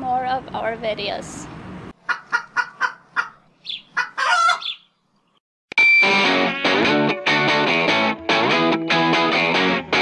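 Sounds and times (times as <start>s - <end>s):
chicken clucking: 2.0s - 4.8s.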